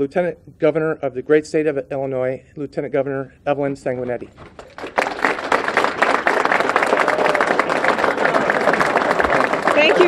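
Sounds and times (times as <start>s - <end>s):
audience applause: 4.6s - 10.0s.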